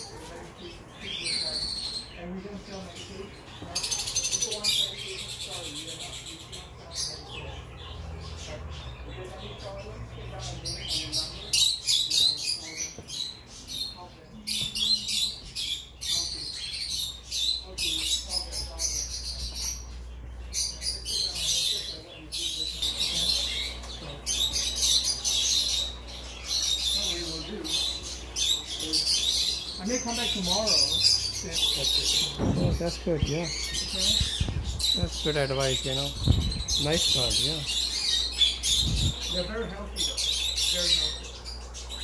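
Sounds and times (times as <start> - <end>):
pet birds chirping: 0.0 - 42.0.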